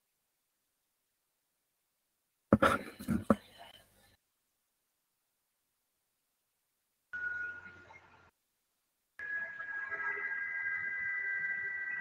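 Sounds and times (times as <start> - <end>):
steady electronic tone: 9.2 - 12.0.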